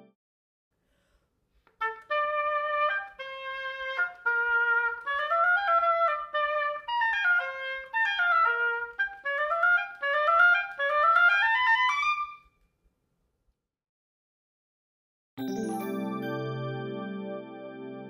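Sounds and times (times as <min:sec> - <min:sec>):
solo oboe playing: 0:01.8 - 0:12.5.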